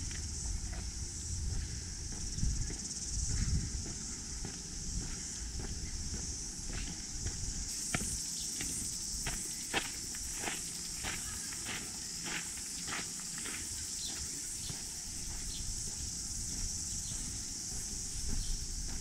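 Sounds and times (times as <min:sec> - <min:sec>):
footsteps on paved path: 0:00.0 - 0:19.0
high-pitched insect chorus: 0:00.0 - 0:19.0.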